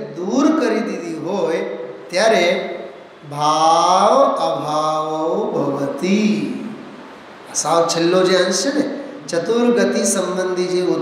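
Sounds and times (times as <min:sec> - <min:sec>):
man chanting in held tones: 0:00.0 - 0:06.8.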